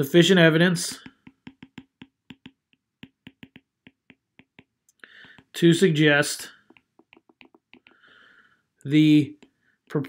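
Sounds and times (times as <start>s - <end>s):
stylus tapping on glass screen: 1.0s - 5.6s, 6.6s - 8.0s.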